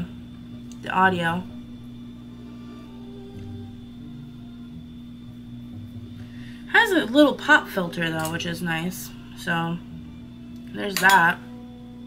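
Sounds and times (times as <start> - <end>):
quiet background music: 0.0 - 12.0
steady electrical hum: 0.0 - 12.0.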